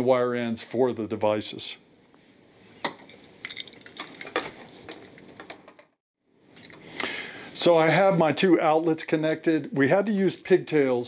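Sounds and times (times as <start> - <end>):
tools handled on workbench: 2.8 - 6.0
metal clicks and clinks: 3.1 - 5.5.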